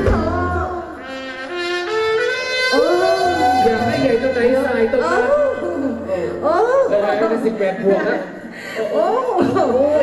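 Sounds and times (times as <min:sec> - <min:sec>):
live band music: 0:00.0 - 0:06.6.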